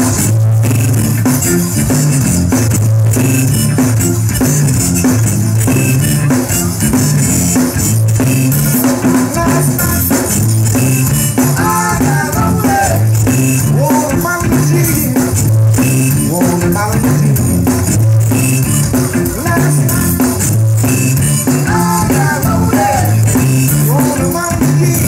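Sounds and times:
live band playing: 0.0 - 25.0.

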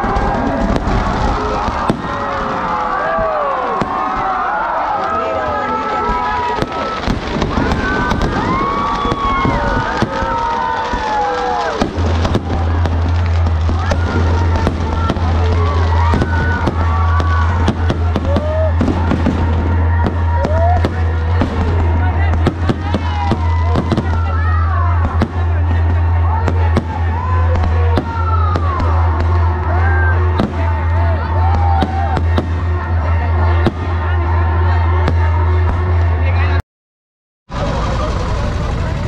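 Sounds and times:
fireworks bursting and crackling: 0.0 - 36.2, 37.5 - 39.0
crowd shouting and whistling: 0.0 - 36.6
steady low drone: 0.0 - 36.6, 37.5 - 39.0.

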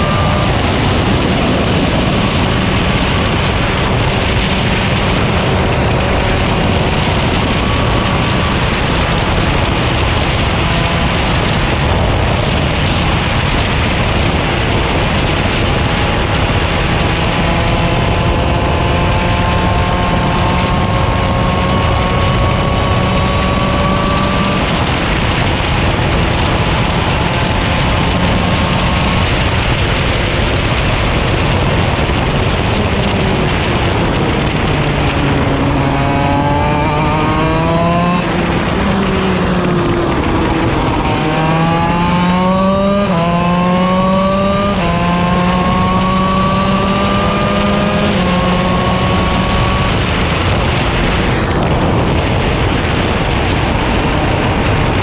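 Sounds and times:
kart engine revving: 0.0 - 55.0.

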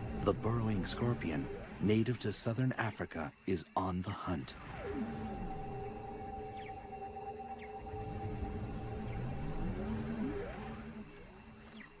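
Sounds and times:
eerie drone music: 0.0 - 2.6, 4.5 - 12.0
faint high ticking pulse: 0.0 - 12.0.

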